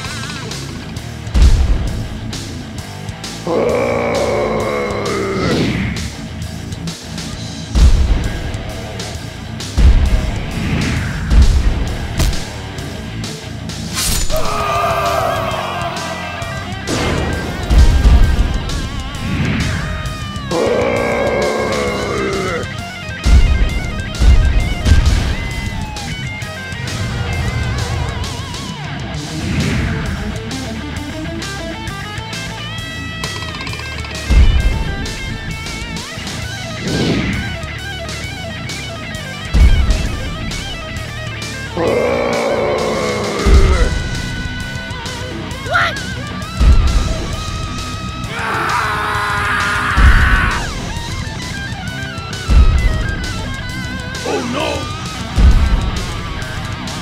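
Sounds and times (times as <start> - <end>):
background music: 0.0 - 57.0
deep booming hits: 1.3 - 2.6, 7.7 - 12.9, 16.4 - 21.0, 23.2 - 28.7, 34.3 - 36.1, 39.5 - 41.4, 43.4 - 45.0, 46.5 - 48.3, 49.8 - 51.8, 52.4 - 54.2, 54.8 - 57.0
crash sound effect: 16.8 - 20.1.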